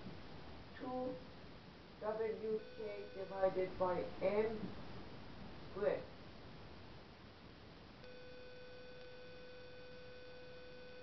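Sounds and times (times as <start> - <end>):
faint background hiss: 0.0 - 11.0.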